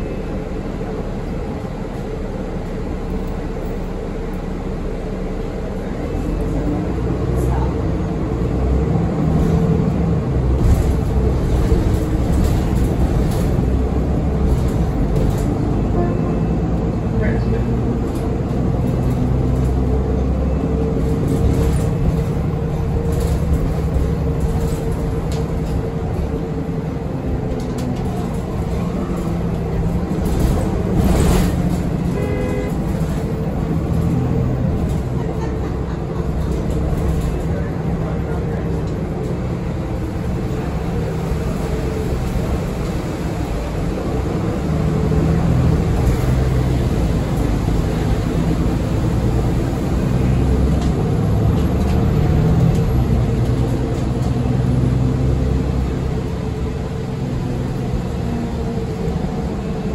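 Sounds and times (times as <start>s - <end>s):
bus engine and road rumble: 0.0s - 59.9s.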